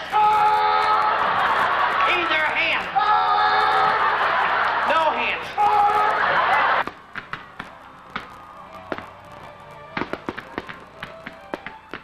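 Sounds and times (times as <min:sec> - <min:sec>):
faint music: 0:00.0 - 0:12.0
fireworks bangs and crackles: 0:06.8 - 0:12.0.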